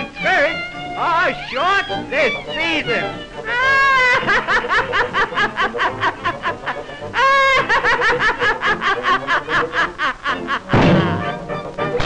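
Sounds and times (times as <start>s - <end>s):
high cartoon voice laughing: 3.5s - 6.6s.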